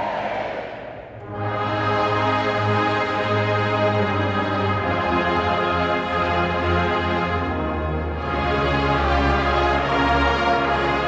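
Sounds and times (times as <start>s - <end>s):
brass band playing chords: 1.1s - 11.0s.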